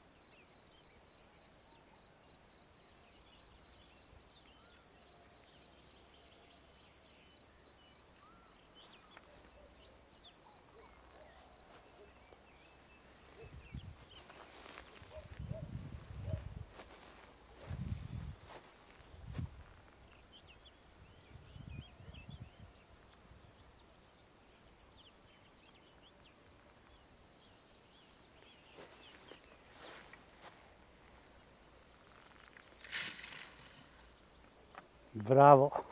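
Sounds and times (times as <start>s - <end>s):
insect chirping trill: 0.0s - 35.5s
glider sliding into grass: 32.5s - 34.1s.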